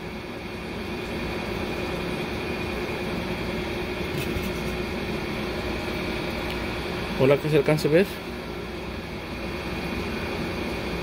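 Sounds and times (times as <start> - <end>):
machine hum: 0.0 - 11.0.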